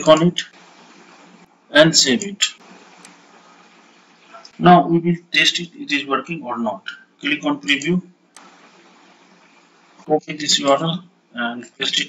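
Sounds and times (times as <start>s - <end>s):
faint microphone hiss: 0.0s - 12.0s.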